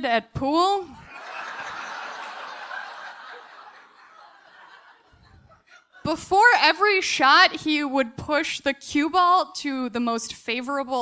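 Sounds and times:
audience laughter: 0:01.0 - 0:06.1.

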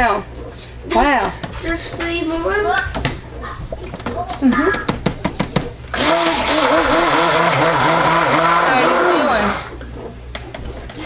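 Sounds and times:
sharp clicks and knocks: 0:02.9 - 0:05.8
stick blender running: 0:04.4 - 0:10.0.

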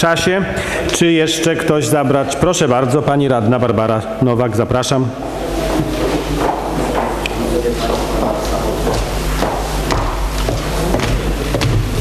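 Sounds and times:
background murmur: 0:05.1 - 0:12.0.

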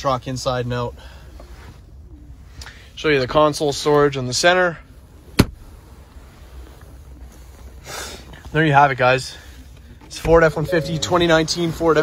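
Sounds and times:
faint low rumble: 0:09.7 - 0:12.0.

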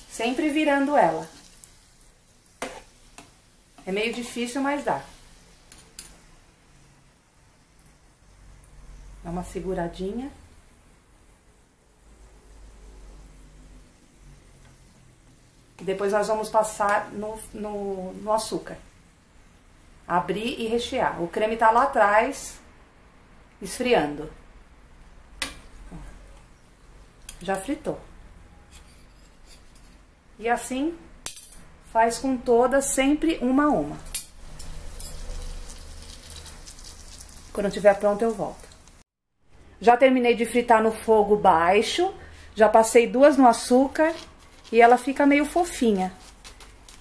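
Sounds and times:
faint frying sizzle: 0:00.0 - 0:31.1, 0:31.8 - 0:39.1, 0:40.4 - 0:47.0
metal spoons clinking: 0:34.0 - 0:36.5.

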